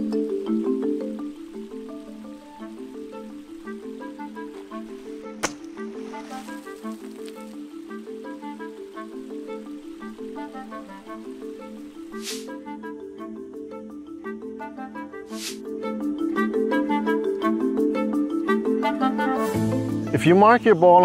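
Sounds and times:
light background music: 0.0 - 21.0
water splashing: 1.8 - 12.5
golf club striking ball: 5.3 - 6.7.

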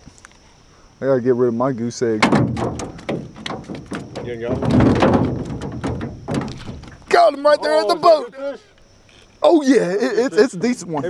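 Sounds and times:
knocks on aluminum boat: 2.2 - 7.1.

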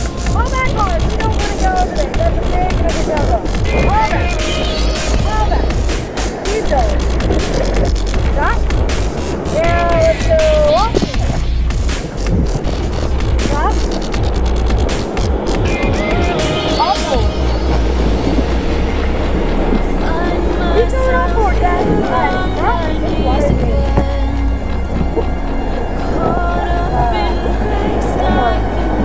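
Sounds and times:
whitewater rushing and splashing: 0.0 - 29.0
knocking on microphone: 23.4 - 24.3.

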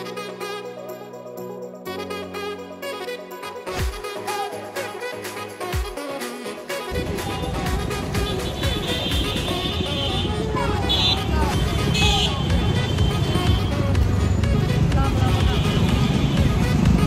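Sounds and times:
background music: 0.0 - 17.0
motor vehicles passing: 6.9 - 17.0
people talking: 10.4 - 12.8, 14.8 - 15.8.

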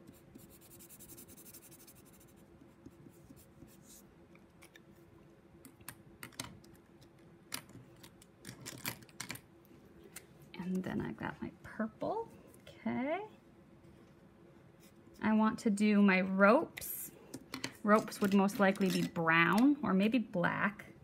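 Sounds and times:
marker scratching on paper: 0.0 - 4.0.

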